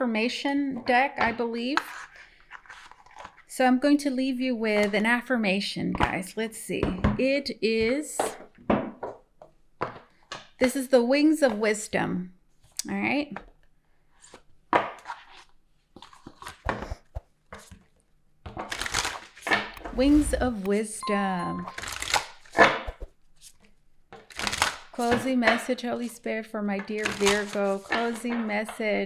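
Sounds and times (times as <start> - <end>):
cards shuffling: 1.9 - 3.4, 14.2 - 17.9, 18.5 - 25.3, 26.9 - 28.8.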